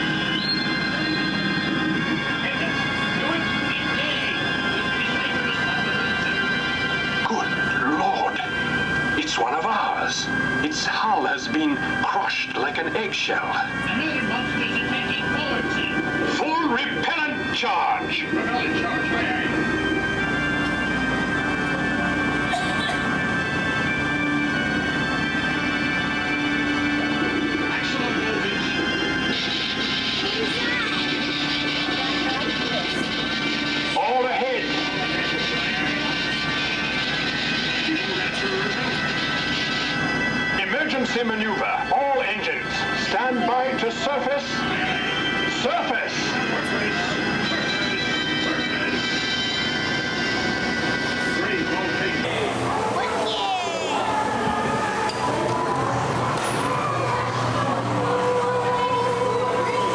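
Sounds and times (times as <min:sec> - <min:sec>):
dramatic music: 0:00.0 - 0:58.1
steady hum: 0:00.0 - 0:59.9.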